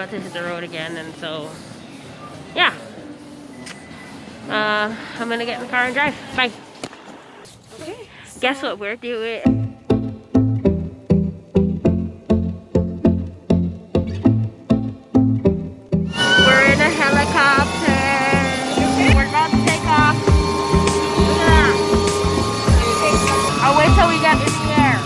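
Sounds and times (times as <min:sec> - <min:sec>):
helicopter cabin noise: 0:16.2 - 0:25.0.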